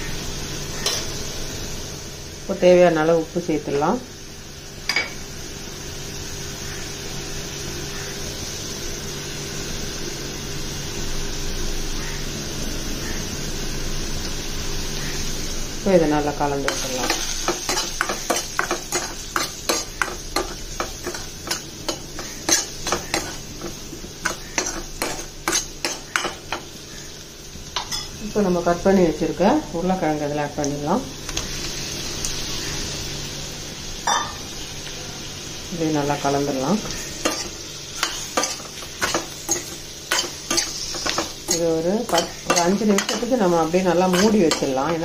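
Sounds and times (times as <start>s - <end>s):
sizzle of frying in oil: 0.0s - 45.0s
metal spoon scraping pan: 16.6s - 26.4s, 36.8s - 45.0s
spoon clinking against pan: 37.2s - 43.3s, 44.1s - 44.8s.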